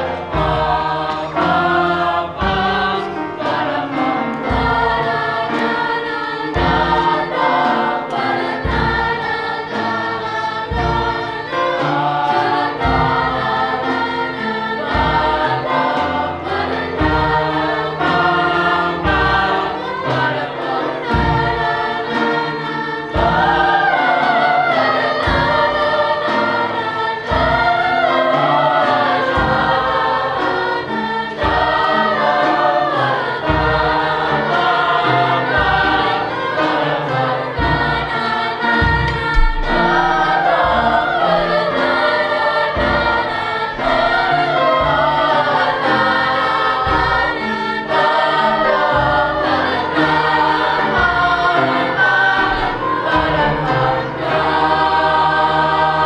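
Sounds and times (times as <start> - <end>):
choir singing: 0.0 - 56.0.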